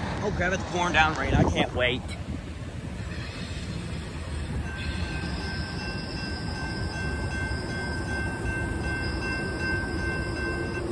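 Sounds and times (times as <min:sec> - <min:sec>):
train wheels rumbling on rail: 0:00.0 - 0:10.9
high-pitched wheel squeal: 0:04.6 - 0:08.2.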